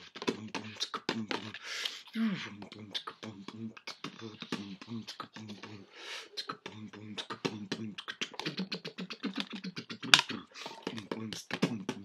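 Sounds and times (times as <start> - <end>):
beatboxing: 0.0 - 12.0
sharp mouth clicks: 7.2 - 11.7.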